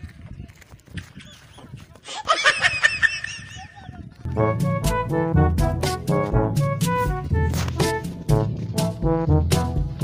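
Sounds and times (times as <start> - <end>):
high-pitched laughter with squeals: 1.1 - 4.0.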